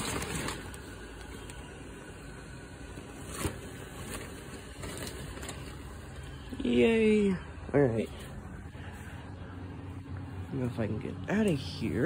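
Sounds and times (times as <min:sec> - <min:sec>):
blower fan humming: 0:00.0 - 0:12.0.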